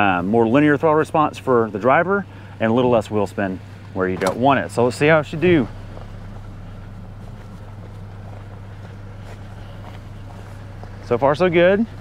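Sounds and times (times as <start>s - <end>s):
car engine humming: 0.0s - 12.0s
tyres crunching on gravel: 0.0s - 12.0s.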